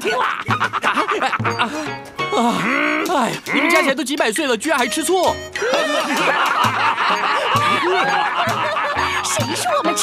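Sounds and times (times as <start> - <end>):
people snickering and chuckling: 0.0 - 3.9, 5.6 - 10.0
background music with low beat: 0.3 - 10.0.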